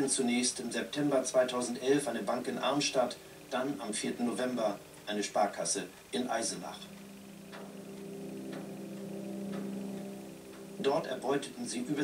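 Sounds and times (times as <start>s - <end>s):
soft clock-like ticking: 0.0s - 12.0s
low droning tone: 6.7s - 12.0s.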